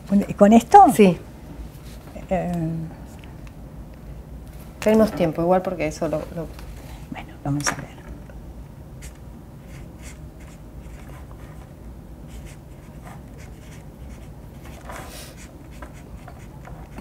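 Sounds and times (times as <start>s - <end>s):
marker pen scratching on paper: 9.0s - 11.7s, 12.3s - 17.0s.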